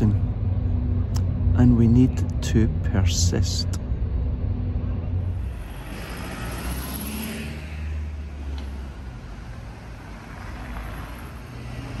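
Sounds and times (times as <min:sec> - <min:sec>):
traffic engine rumble: 0:00.0 - 0:12.0
tyre and road noise: 0:04.0 - 0:12.0.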